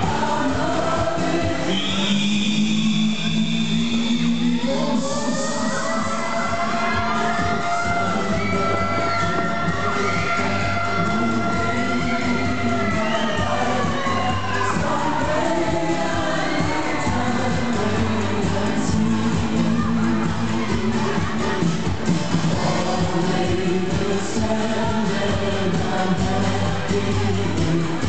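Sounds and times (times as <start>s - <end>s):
crowd cheering and shouting: 0.0s - 28.0s
loud music over sound system: 0.0s - 28.0s.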